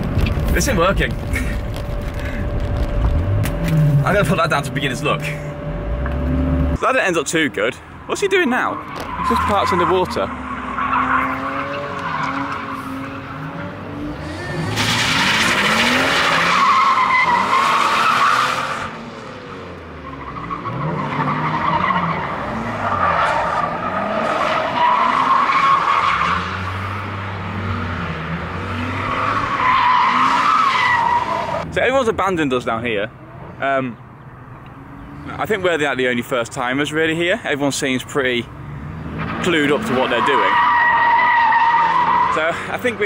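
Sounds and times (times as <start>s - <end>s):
car engine revving: 0.0s - 6.9s, 8.8s - 31.7s
tyres squealing and skidding: 8.2s - 31.7s, 38.6s - 43.0s.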